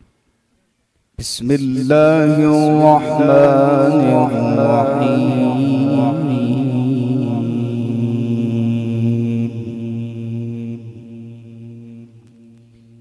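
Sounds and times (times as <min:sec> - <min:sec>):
man reciting long note: 0:01.2 - 0:13.0.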